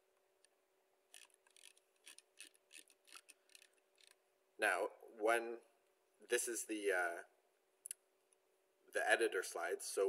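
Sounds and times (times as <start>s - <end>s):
faint electrical hum: 0.0s - 10.0s
mouse scroll wheel ticking: 1.1s - 4.2s.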